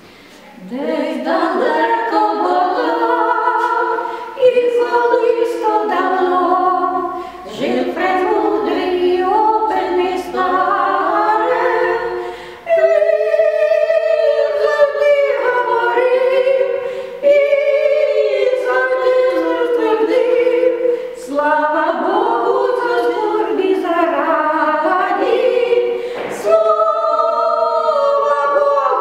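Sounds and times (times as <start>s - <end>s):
short breaths: 0.0s - 0.6s, 4.0s - 4.4s, 7.1s - 7.5s, 12.2s - 12.7s, 16.8s - 17.2s, 20.9s - 21.2s, 25.9s - 26.3s
women singing unaccompanied: 0.3s - 29.0s.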